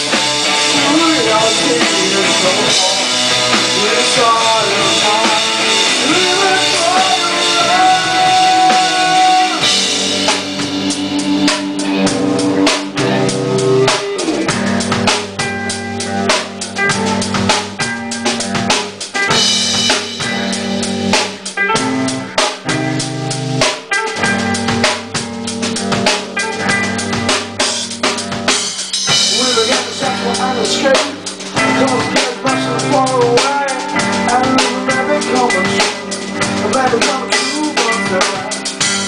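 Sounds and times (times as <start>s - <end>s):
live rock band playing: 0.0s - 39.0s.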